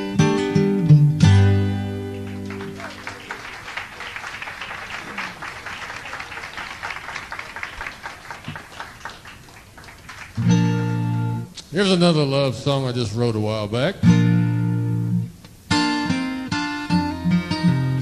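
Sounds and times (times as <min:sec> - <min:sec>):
acoustic guitar chord ringing: 0:00.0 - 0:03.2, 0:10.4 - 0:11.5, 0:14.0 - 0:18.0
audience applause: 0:02.0 - 0:10.5.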